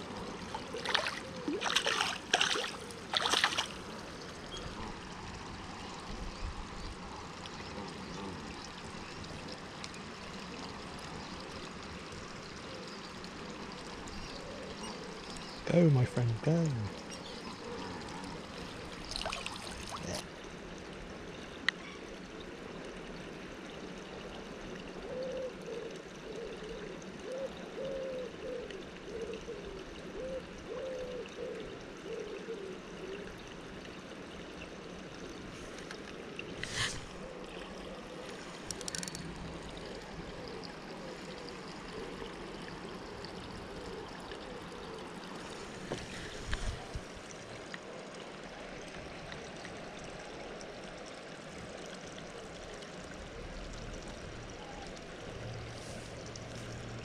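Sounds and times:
trickle of running water: 0.0s - 57.0s.

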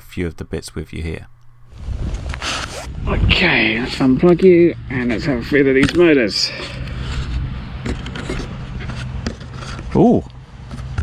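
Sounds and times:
steady low hum: 0.0s - 11.0s
low rumble: 1.6s - 5.8s.

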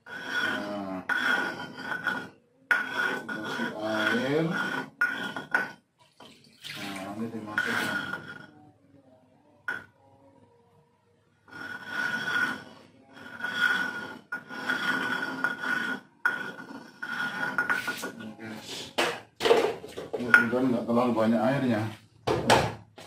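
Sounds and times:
hands scraping dough in mortar: 0.0s - 5.8s, 11.5s - 18.6s.

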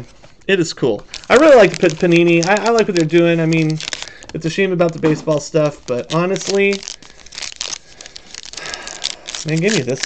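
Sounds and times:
foil wrapper crinkling and tearing: 1.1s - 10.0s.

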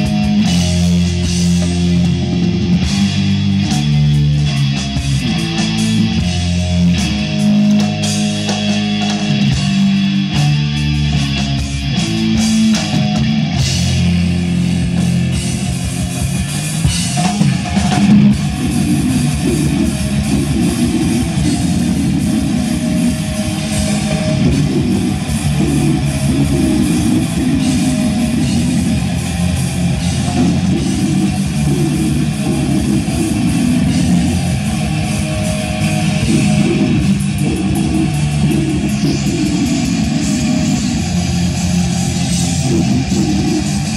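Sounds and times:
heavy metal band playing live: 0.0s - 43.9s.

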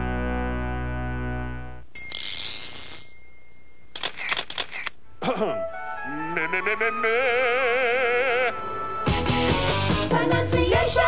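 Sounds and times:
camera shutter clicks: 4.0s - 5.0s.

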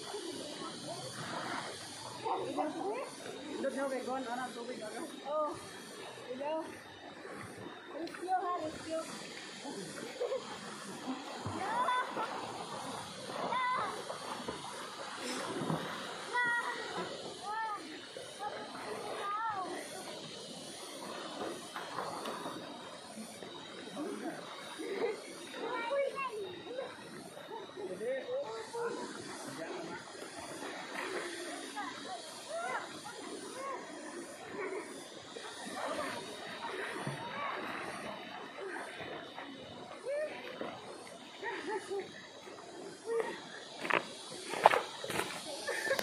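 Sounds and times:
people talking and calling out: 0.0s - 46.0s.

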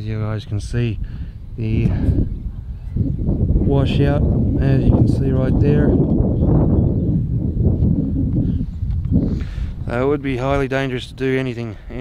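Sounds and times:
low microphone rumble: 0.0s - 12.0s.

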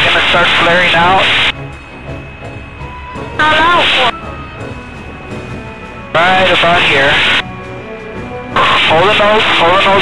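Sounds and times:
airplane engine running: 0.0s - 10.0s
loud voice burst: 8.6s - 10.0s.

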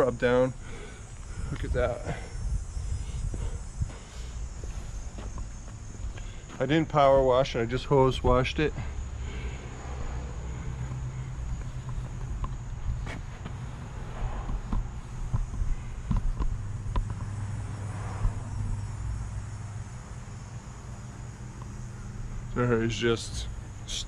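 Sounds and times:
faint insect trill: 0.0s - 24.0s
low rumble: 8.7s - 20.8s.

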